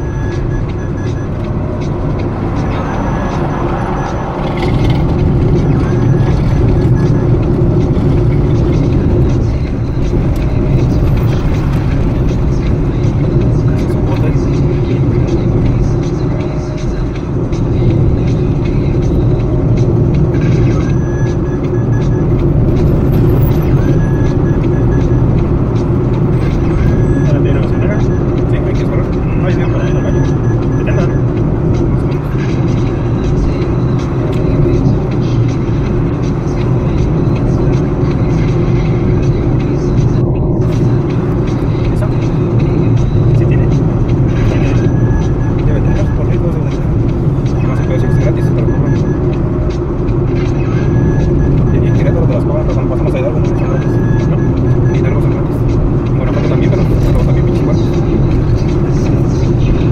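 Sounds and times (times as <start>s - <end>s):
car road and engine noise: 0.0s - 59.9s.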